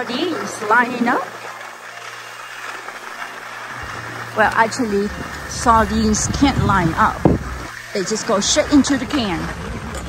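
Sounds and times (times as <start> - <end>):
low mechanical hum: 3.6 - 10.0.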